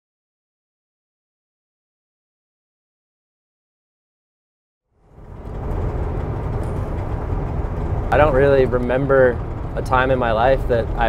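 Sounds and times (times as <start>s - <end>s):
vehicle engine and road noise: 4.9s - 11.0s.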